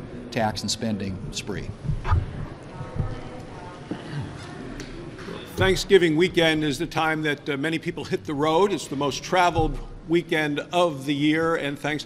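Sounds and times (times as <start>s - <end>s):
faint voices: 1.6s - 6.0s.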